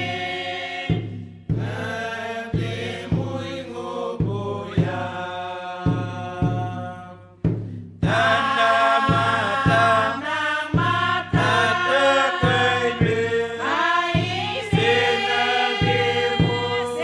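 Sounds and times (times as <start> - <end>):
group singing long notes: 0.0 - 7.3, 8.0 - 17.0
deep drum beat: 0.0 - 17.0.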